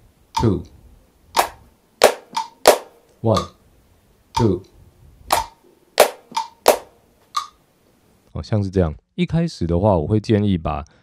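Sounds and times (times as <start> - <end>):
sharp hand claps: 1.4 - 3.0, 5.3 - 6.9
metronome clicks: 1.4 - 3.5, 5.3 - 7.6.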